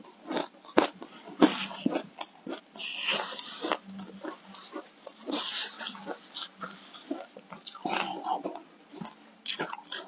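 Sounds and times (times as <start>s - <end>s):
chewing and crunching ice: 0.0s - 10.0s.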